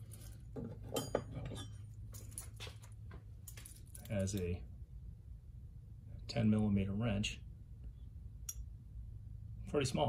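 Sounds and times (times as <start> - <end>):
metal clinks and rattles: 0.0 - 4.5
low steady hum: 0.0 - 10.0.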